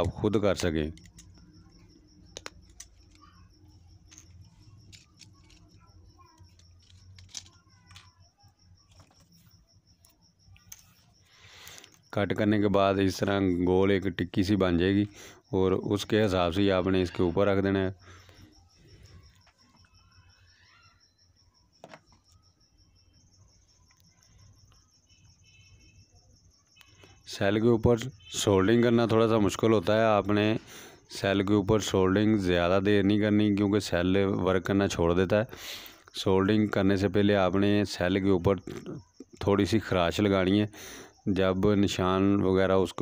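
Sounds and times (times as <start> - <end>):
plastic parts clicking on wooden table: 0.0 - 1.5, 2.3 - 8.1
cricket chirping: 0.0 - 43.0.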